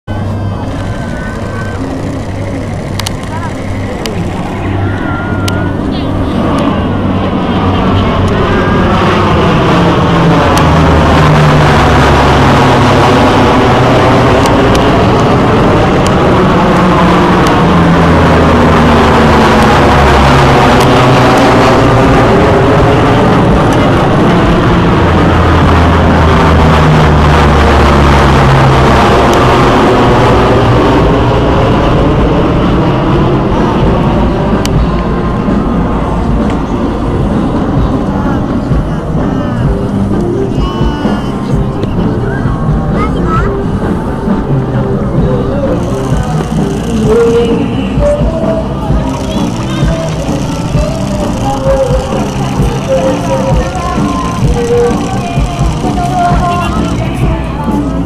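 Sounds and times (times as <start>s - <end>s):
propeller aircraft flying overhead: 0.1s - 58.0s.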